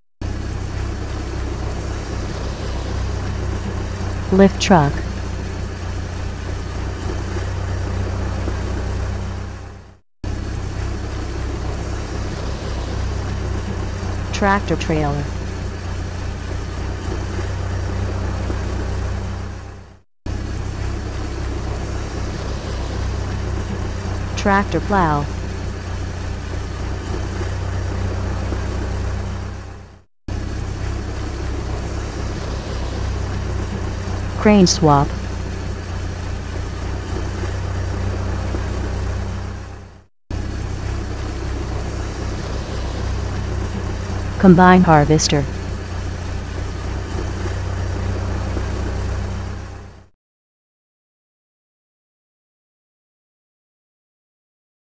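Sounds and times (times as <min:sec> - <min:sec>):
low vehicle engine rumble: 0:00.2 - 0:50.1.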